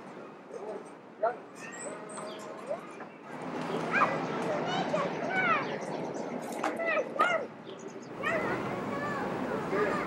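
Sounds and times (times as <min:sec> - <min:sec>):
distant voices: 0:00.0 - 0:10.0.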